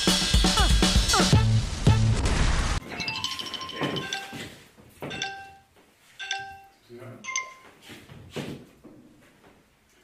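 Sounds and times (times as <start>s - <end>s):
electronic bell chimes: 2.9s - 7.8s.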